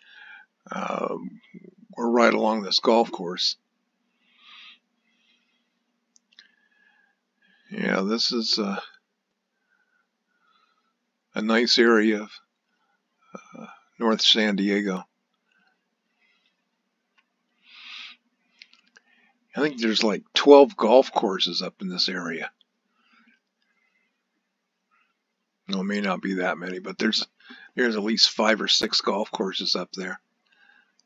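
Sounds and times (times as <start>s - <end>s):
man breathing in: 0.0s - 0.5s, 6.4s - 7.7s
faint low hum: 0.0s - 31.0s.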